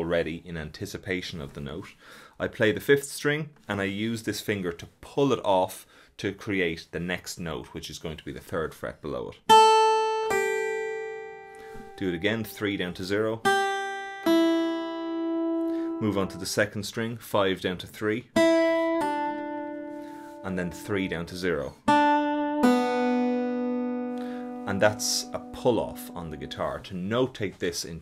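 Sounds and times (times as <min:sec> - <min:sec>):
acoustic guitar pull-off: 0:09.5 - 0:16.6, 0:21.9 - 0:26.8.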